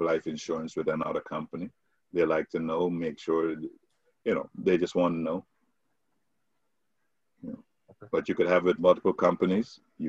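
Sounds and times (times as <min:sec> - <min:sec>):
man talking: 0:00.0 - 0:03.7, 0:04.3 - 0:05.4, 0:07.4 - 0:10.0.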